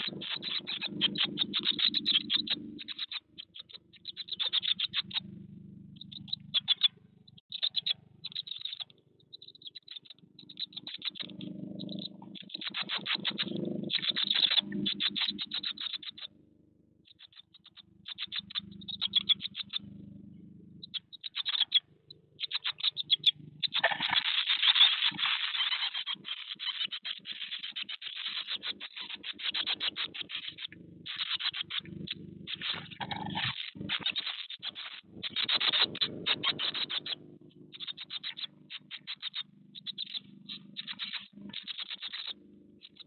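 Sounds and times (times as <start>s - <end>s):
nestlings begging chirps: 0.0s - 5.4s, 6.0s - 16.3s, 17.1s - 43.0s
chicks scratching on nest material: 22.7s - 26.1s, 28.0s - 40.1s.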